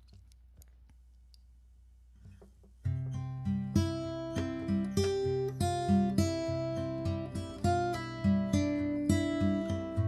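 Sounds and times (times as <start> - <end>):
low steady hum: 0.0 - 3.2.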